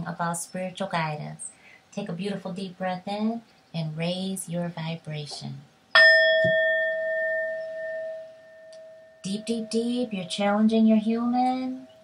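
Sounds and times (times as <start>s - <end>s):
singing bowl ringing: 6.0s - 12.0s.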